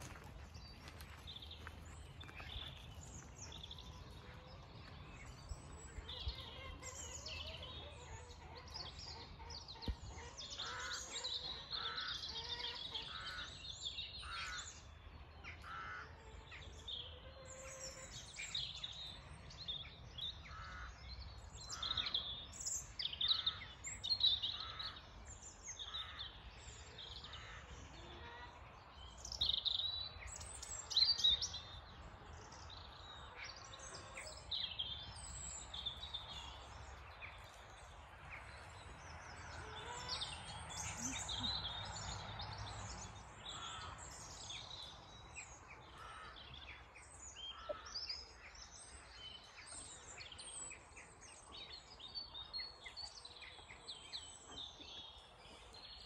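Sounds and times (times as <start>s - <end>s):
birds singing and calling: 0.0s - 56.0s.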